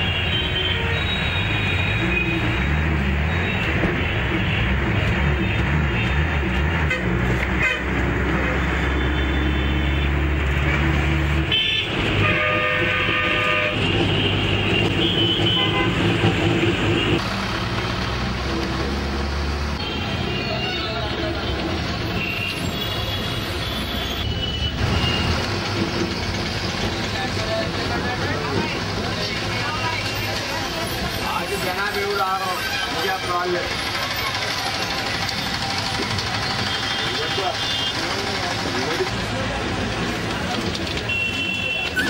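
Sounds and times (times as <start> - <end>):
bus engine droning: 0.7 - 41.0
vehicle horns tooting: 6.8 - 10.1, 11.5 - 16.2, 36.5 - 38.3, 41.0 - 42.0.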